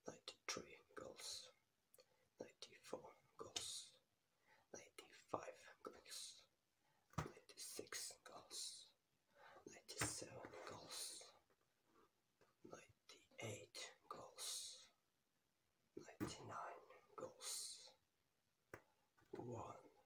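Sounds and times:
man whispering: 0.0s - 6.6s, 7.2s - 11.5s, 12.5s - 15.0s, 15.9s - 18.1s, 19.3s - 20.0s.

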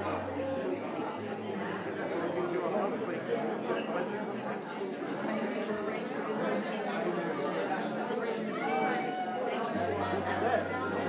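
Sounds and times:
murmur of overlapping voices: 0.0s - 11.0s.

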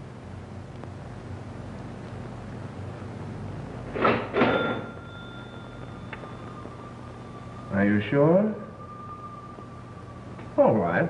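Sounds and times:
cash register mechanism clanks: 3.9s - 5.0s
cash register bell ringing: 4.0s - 6.4s.

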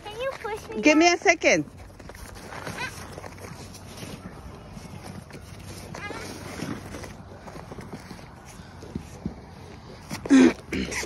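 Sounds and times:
sled scraping over snow: 0.0s - 11.0s.

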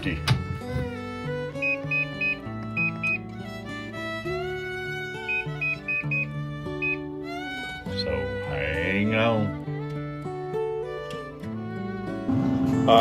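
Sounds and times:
background music: 0.0s - 13.0s
high beeps from control panel: 1.6s - 3.2s, 5.3s - 7.0s.

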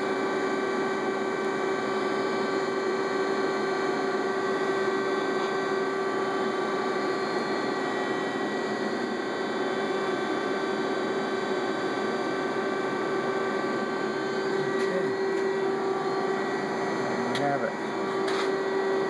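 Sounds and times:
machine humming with whine: 0.0s - 19.0s.

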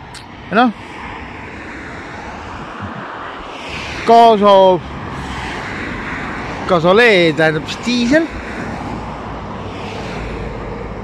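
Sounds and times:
passing traffic rumble: 0.0s - 11.0s.

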